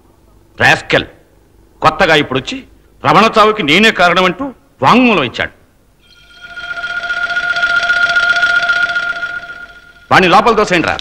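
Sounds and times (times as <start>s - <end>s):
high steady tone: 6.0s - 10.6s.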